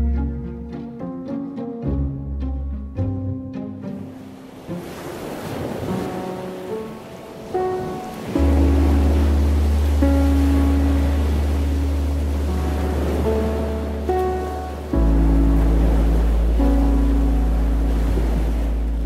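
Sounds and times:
mellow background music: 0.0s - 19.0s
ocean waves washing ashore: 0.2s - 19.0s.

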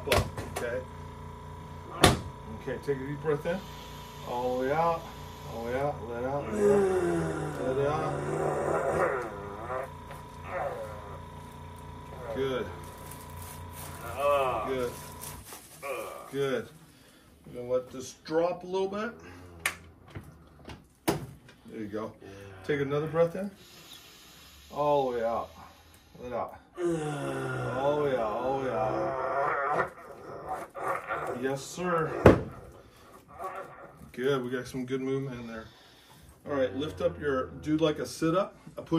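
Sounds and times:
low background hum: 0.0s - 38.9s
man groaning on exhale: 6.4s - 9.6s, 15.8s - 16.4s, 26.8s - 29.2s.

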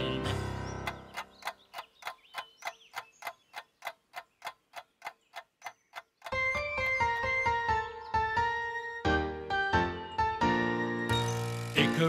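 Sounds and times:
keyboard music: 0.0s - 1.7s, 6.0s - 12.0s
clock ticking: 0.8s - 7.4s.

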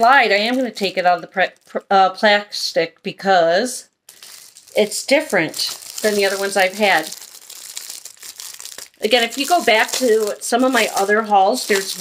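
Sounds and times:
plastic packaging crinkling: 0.0s - 1.8s, 4.1s - 12.0s.

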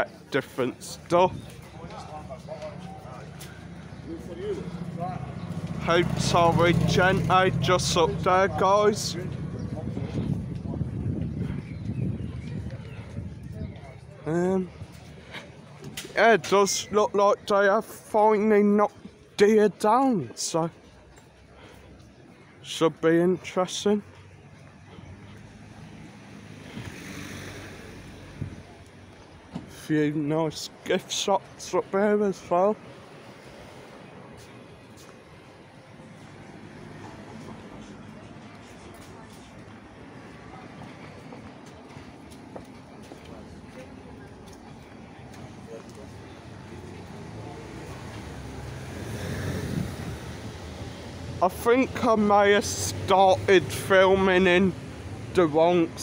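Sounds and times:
car passing on road: 1.8s - 13.0s, 23.4s - 31.0s, 31.8s - 56.0s.

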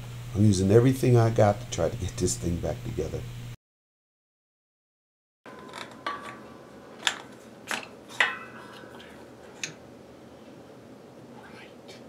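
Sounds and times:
sharp metallic clinks and knocks: 5.5s - 9.8s.

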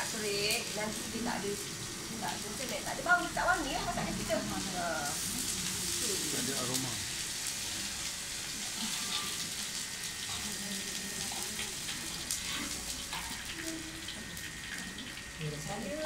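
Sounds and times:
onions sizzling in oil: 0.0s - 16.0s
metal spatula scraping wok: 8.6s - 9.6s, 12.2s - 13.6s.

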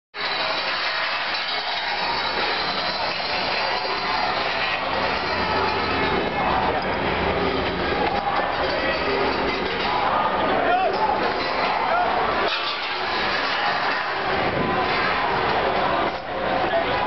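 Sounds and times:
metal barricades scraping and rattling: 0.2s - 17.0s.

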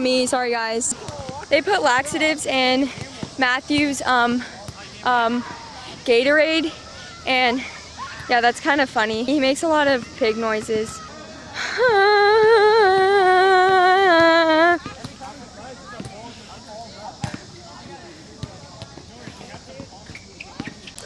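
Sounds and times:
faint chatter: 0.8s - 21.0s.

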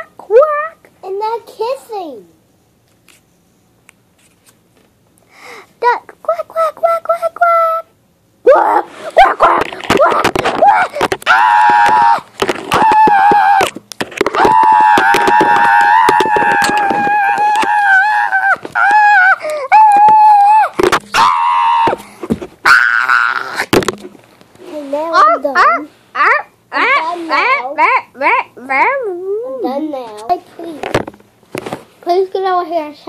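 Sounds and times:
girl squealing: 8.4s - 13.8s, 14.4s - 23.7s.

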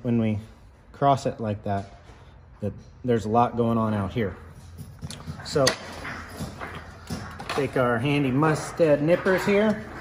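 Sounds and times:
handling noise: 4.2s - 10.0s
man speaking: 7.4s - 10.0s.

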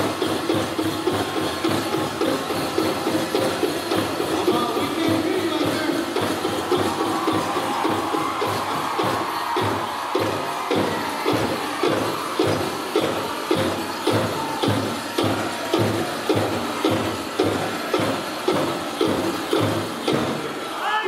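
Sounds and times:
bass drum steady beat: 0.0s - 20.5s
drum group singing: 0.0s - 20.7s.

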